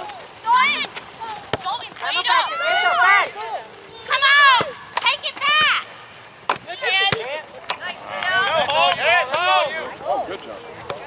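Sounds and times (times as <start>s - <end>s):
spectators shouting: 2.0s - 5.9s.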